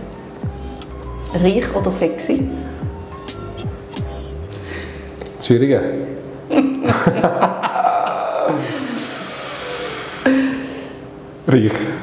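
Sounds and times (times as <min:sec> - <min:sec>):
man humming: 0:07.6 - 0:10.6
man exhaling breathily: 0:07.8 - 0:11.0.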